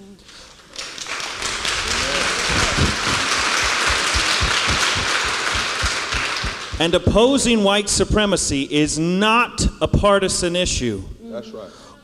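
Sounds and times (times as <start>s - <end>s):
congregation applauding: 0.3s - 7.4s.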